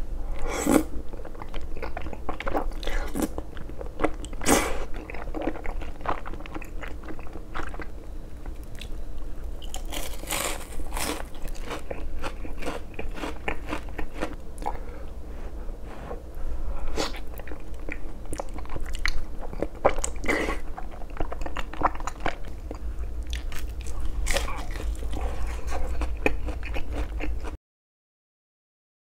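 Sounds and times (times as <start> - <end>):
crunching bites of fried food: 9.6 - 14.7
wet chewing and slurping: 17.0 - 27.5.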